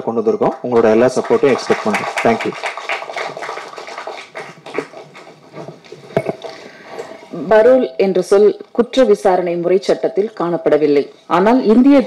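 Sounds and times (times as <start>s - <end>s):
audience applauding: 0.4s - 6.6s.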